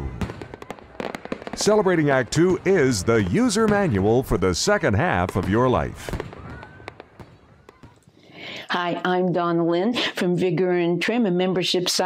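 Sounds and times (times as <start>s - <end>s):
fireworks popping: 0.0s - 8.1s
faint firework whistle: 5.9s - 8.0s.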